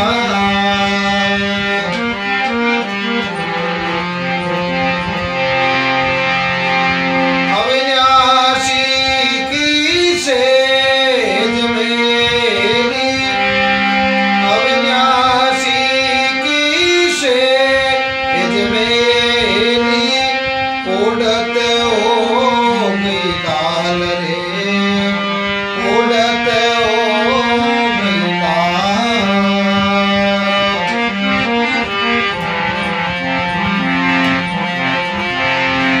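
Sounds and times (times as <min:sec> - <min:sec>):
man singing: 0:00.0 - 0:02.6, 0:07.4 - 0:33.1
harmonium melody: 0:00.0 - 0:36.0.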